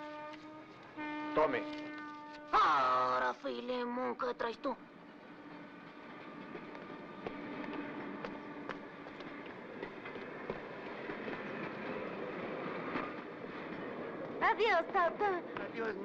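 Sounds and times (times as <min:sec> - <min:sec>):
train wheels rumbling on rails: 0:03.5 - 0:16.0.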